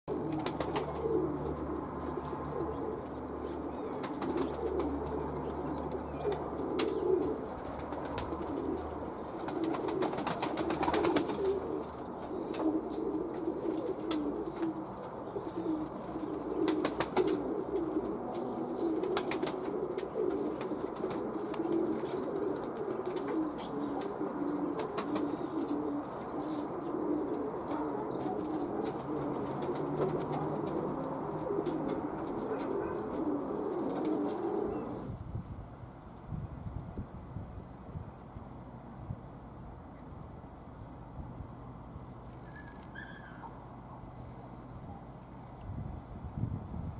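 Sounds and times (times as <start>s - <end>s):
pigeons cooing: 0.1s - 35.1s.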